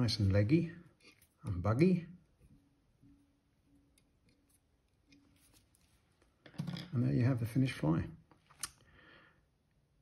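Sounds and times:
brush scratching through fibres: 4.5s - 6.2s.

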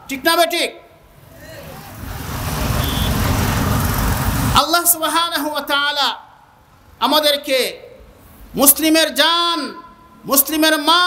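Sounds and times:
loud low rumble with hiss: 1.1s - 5.0s
brief high beep: 2.8s - 3.2s.

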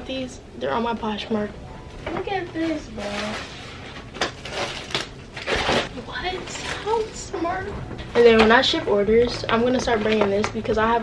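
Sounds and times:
cloth bag rustling: 2.6s - 7.3s.

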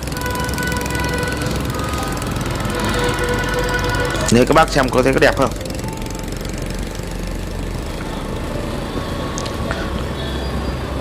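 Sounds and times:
motorbike engine: 0.0s - 11.0s
road noise: 0.0s - 11.0s.

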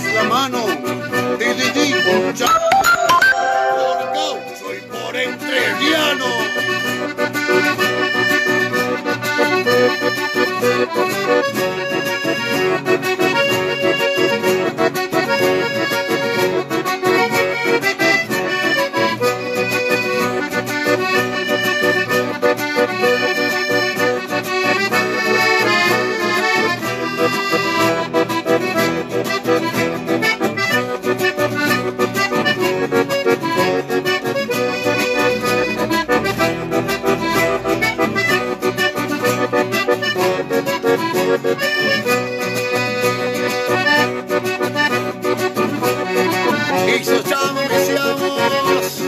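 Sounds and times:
accordion playing lively melody: 0.0s - 49.0s
acoustic guitar strumming: 0.0s - 49.0s.

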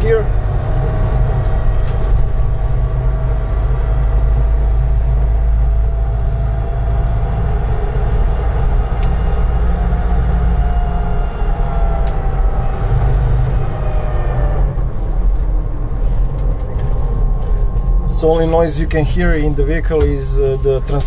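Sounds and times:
transmission whine: 0.0s - 21.0s
vehicle cab low rumble: 0.0s - 21.0s.

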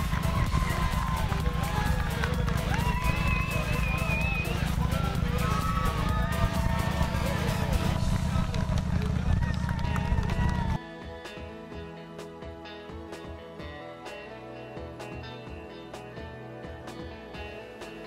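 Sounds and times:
heavy low rumble: 0.0s - 10.8s
spectators shouting and cheering: 0.0s - 10.8s
guitar music: 10.5s - 18.0s.

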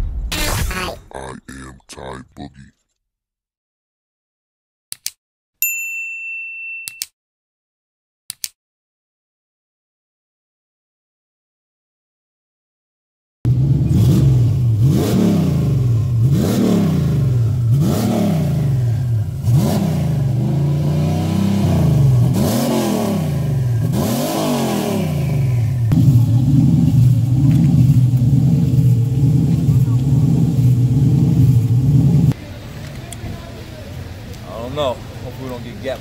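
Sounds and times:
car engine revving: 13.5s - 32.4s.

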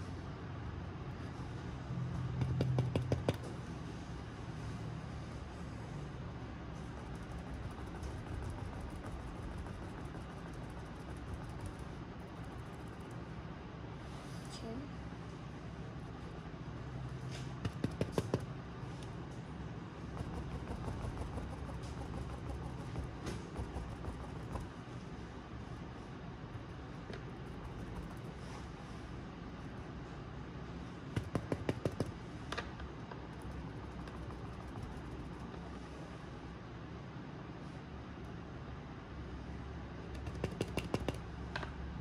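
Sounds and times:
paintbrush tapping on canvas: 2.4s - 3.5s, 20.1s - 24.8s, 31.2s - 32.2s, 40.1s - 41.2s.

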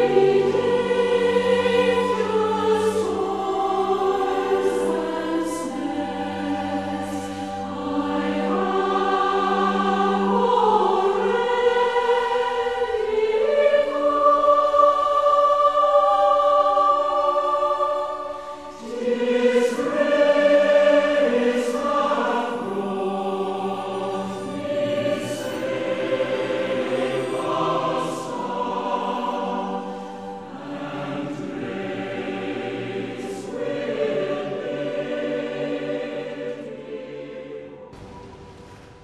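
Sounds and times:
choir singing held chords: 0.0s - 39.0s.

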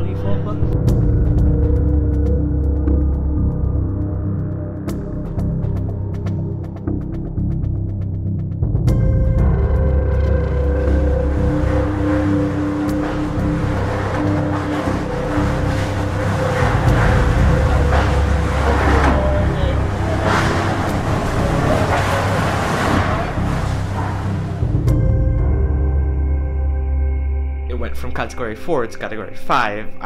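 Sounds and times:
held music drone: 0.0s - 30.0s.

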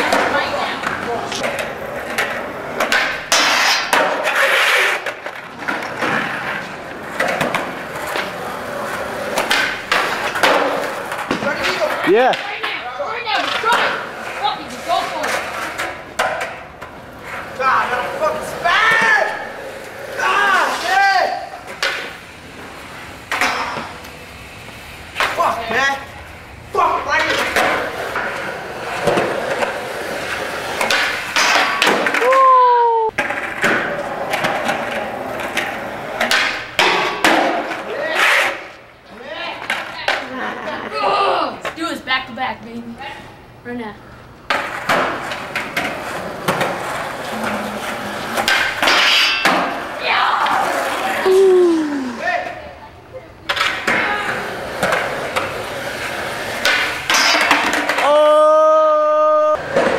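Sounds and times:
voices: 0.0s - 3.0s, 17.0s - 30.9s, 45.9s - 48.9s, 49.8s - 56.7s, 57.9s - 59.9s
skateboard wheels rolling: 0.0s - 42.3s, 44.1s - 59.9s
skateboards clacking on ground: 0.0s - 43.2s, 44.4s - 59.9s.

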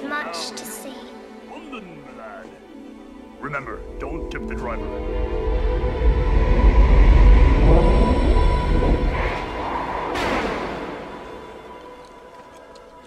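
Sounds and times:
music: 0.0s - 13.0s
deep rumble: 3.7s - 12.1s
loud rushing whoosh: 4.8s - 11.6s.

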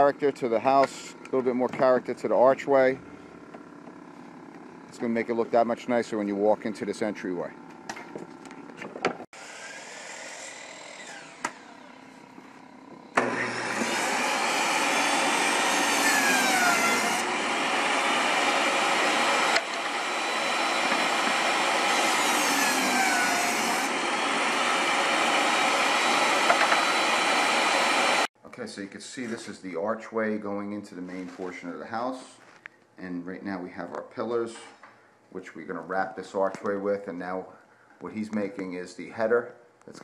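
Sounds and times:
table saw cutting wood: 9.3s - 28.3s.

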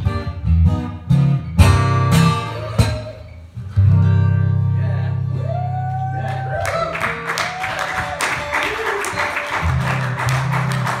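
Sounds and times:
strummed acoustic guitar: 0.0s - 4.8s
audience applause: 5.9s - 11.0s.

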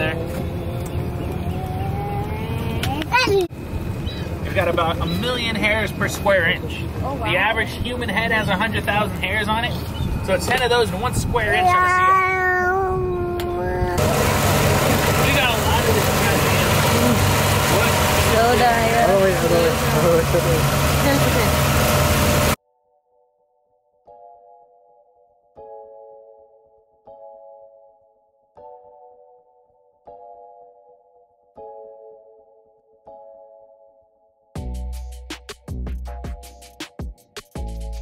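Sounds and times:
thin rising tone: 0.0s - 3.0s
boat engine rumbling: 0.0s - 12.1s, 12.8s - 22.6s
outboard motor running: 13.4s - 22.6s.

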